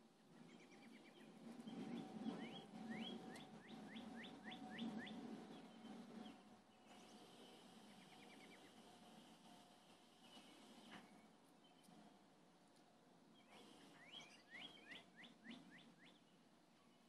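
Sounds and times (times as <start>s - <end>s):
songbird singing: 0.4s - 8.9s, 13.3s - 17.0s.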